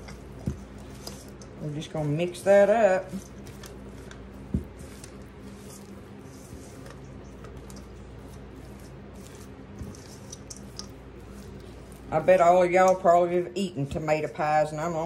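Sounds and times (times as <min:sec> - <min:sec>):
spatula squishing and scraping: 0:00.0 - 0:15.0.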